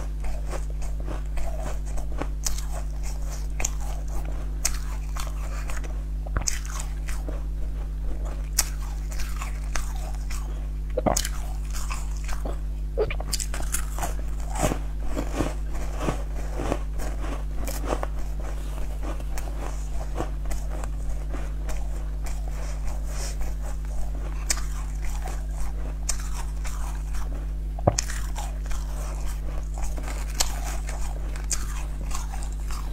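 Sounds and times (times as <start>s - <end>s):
low steady hum: 0.0s - 32.9s
person chewing crunchy pastry: 0.0s - 32.9s.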